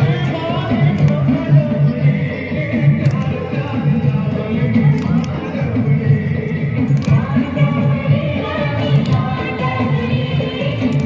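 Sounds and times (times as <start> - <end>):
folk dance music: 0.0 - 11.0.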